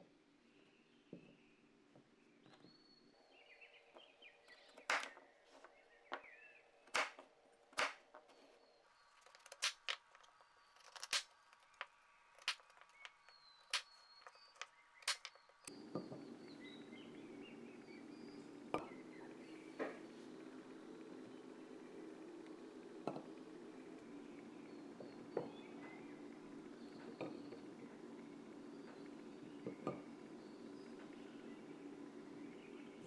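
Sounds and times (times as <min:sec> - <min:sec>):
low steady hum: 0:00.0 - 0:33.0.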